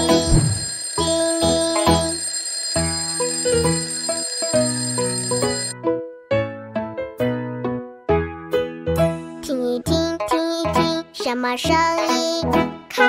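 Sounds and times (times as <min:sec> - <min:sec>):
instrumental children's music: 0:00.0 - 0:02.2, 0:05.4 - 0:13.0
alarm clock bell ringing: 0:00.0 - 0:05.8.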